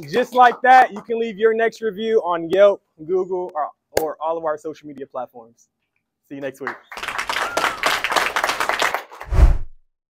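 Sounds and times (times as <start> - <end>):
small group clapping: 0.0 - 1.2, 6.4 - 9.3.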